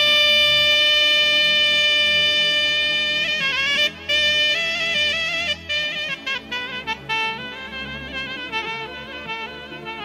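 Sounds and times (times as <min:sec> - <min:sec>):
alto saxophone long note: 0:00.0 - 0:10.0.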